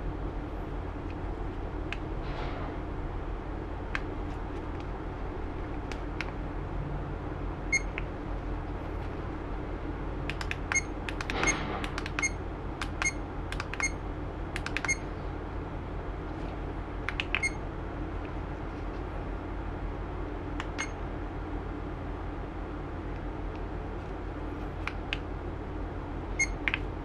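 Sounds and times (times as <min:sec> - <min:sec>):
low hum: 0:00.0 - 0:27.0.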